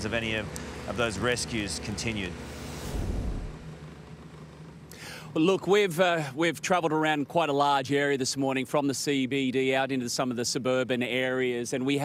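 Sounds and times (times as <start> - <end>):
outboard motor running: 0.0 - 9.8
brief low rumble: 2.6 - 3.8
wind noise: 2.8 - 3.6.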